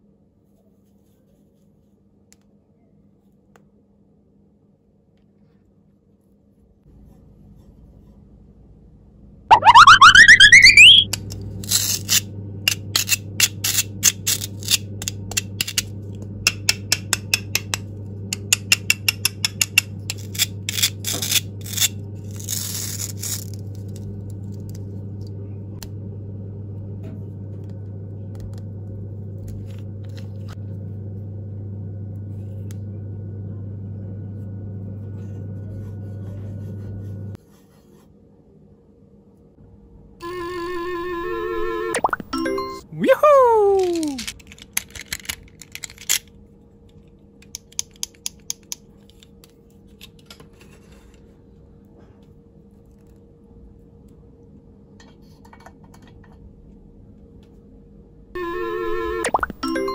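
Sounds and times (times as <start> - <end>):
fast-rising whistle sound effect: 9.5 - 11.1
steady low hum: 23.8 - 37.4
plastic toy clicking: 43.8 - 46.2.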